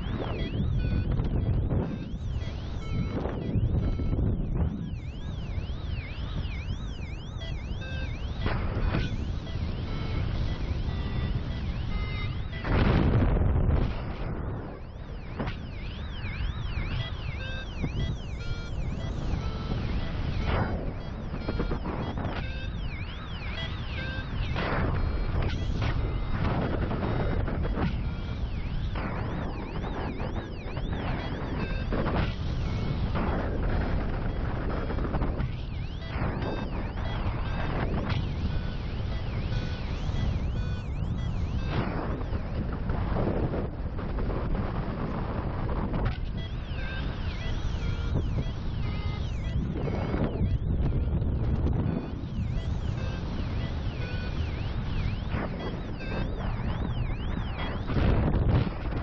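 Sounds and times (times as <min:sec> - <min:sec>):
variometer beeping: 0:00.0 - 0:42.7, 0:46.1 - 0:59.0
wind noise on microphone: 0:00.0 - 0:59.0.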